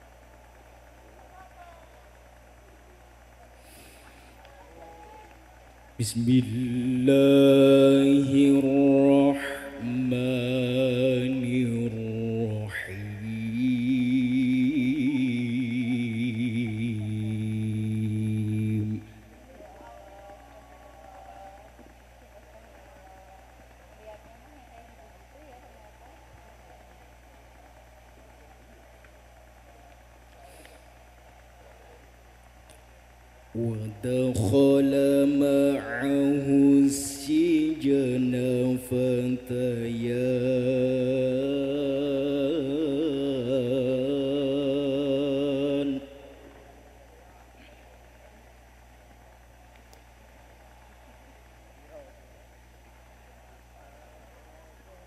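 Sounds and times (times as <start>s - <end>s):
breath: 3.6s - 4.4s, 30.4s - 30.9s
man chanting into a microphone: 6.0s - 19.2s, 33.6s - 46.4s
man reciting melodically: 6.0s - 19.3s, 33.6s - 46.5s.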